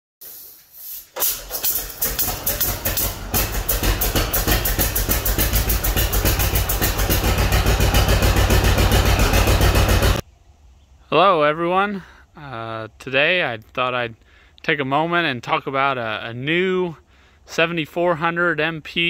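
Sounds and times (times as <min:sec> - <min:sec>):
old tractor engine running: 0:01.2 - 0:10.2.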